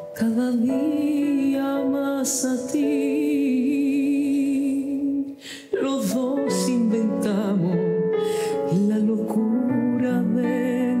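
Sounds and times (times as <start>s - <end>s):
woman singing a slow ballad: 0.0s - 11.0s.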